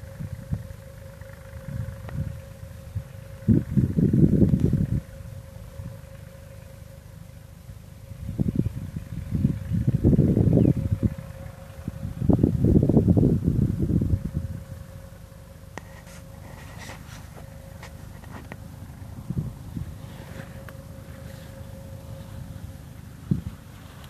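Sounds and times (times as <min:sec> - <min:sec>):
wind buffeting microphone: 0:00.0 - 0:06.3, 0:07.7 - 0:15.1, 0:15.8 - 0:24.0
faint steady tone: 0:00.0 - 0:24.0.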